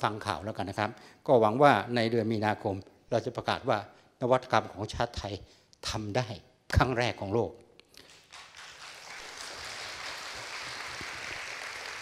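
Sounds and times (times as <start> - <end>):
audience applauding: 8.0 - 12.0.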